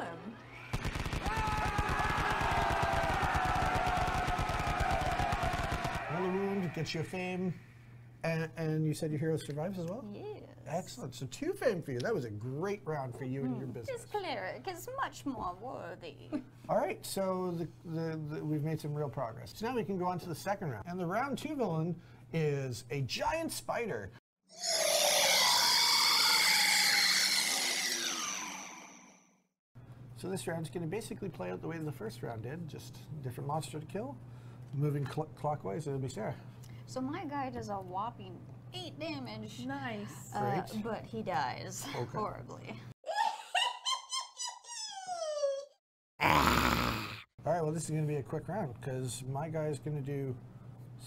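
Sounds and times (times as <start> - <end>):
machine-gun fire: 0.6 - 6.2.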